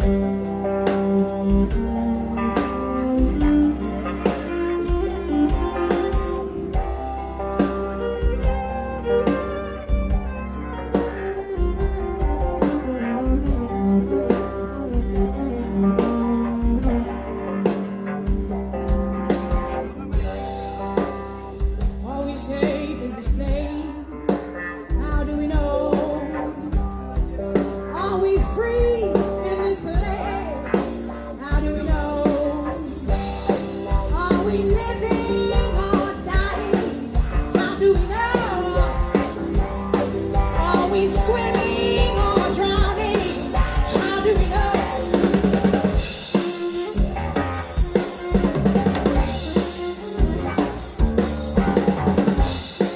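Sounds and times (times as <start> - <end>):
bowed violin: 0.0 - 19.2, 31.4 - 52.7
electric guitar: 0.0 - 52.9
drum beat: 26.8 - 52.9.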